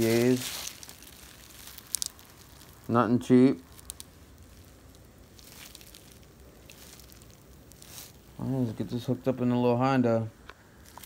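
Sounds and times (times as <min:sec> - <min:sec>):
bubble wrap crinkling: 0:00.0 - 0:09.2, 0:10.8 - 0:11.0.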